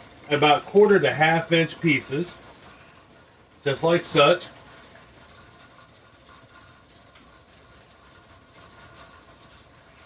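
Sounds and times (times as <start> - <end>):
steam hiss from pressure canner: 0.0 - 10.0.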